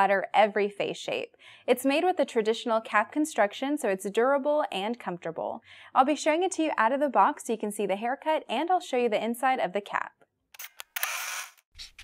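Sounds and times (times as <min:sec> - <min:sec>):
camera shutter clicks: 0:10.6 - 0:11.6.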